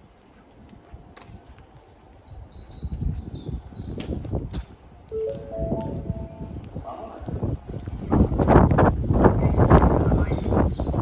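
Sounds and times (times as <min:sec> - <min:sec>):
rising four-note chime: 0:05.2 - 0:06.5.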